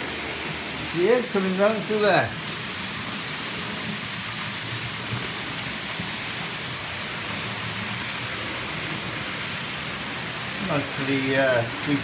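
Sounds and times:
model train wheels rolling on track: 0.0 - 12.0.

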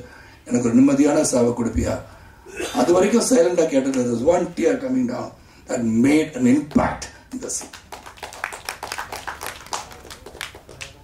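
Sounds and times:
audience applause: 7.6 - 11.0.

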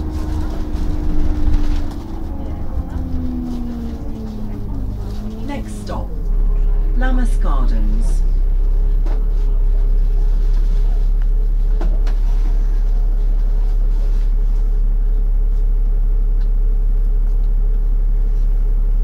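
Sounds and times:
bus diesel engine droning: 0.0 - 19.0.

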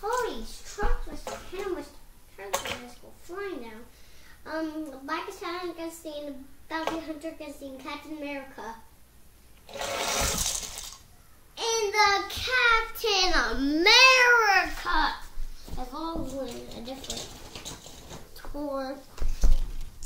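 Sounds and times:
toy trucks rushing down ramp: 9.7 - 11.0.

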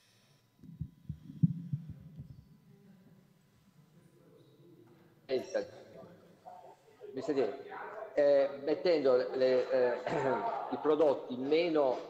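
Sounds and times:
low muffled thumps: 0.6 - 2.4.

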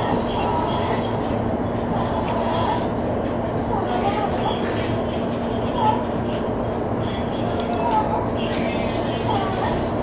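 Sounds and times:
electric train rumbling: 0.0 - 10.0.

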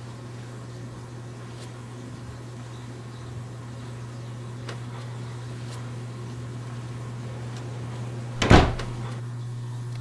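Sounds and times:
low electrical hum: 0.0 - 10.0
door banging shut: 8.4 - 9.0.

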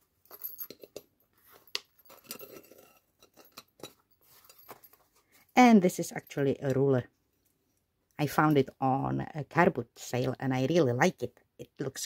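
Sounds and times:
soft cloth rustles: 0.1 - 2.8, 3.9 - 5.7
small clicks and clinks: 0.2 - 5.5.

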